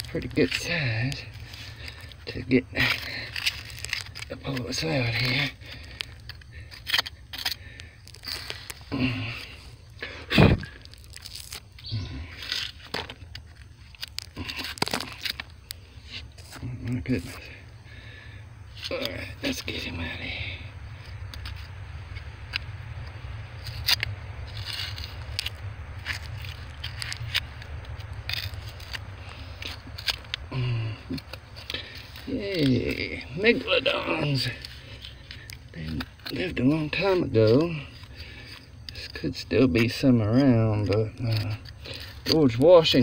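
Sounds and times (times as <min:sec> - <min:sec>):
gravel scraping and clicking: 0:00.0 - 0:43.0
low steady rumble: 0:00.0 - 0:43.0.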